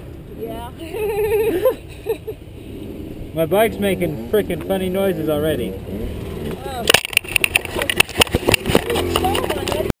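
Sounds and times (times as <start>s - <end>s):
dirt bike knocking and clattering: 6.9s - 10.0s.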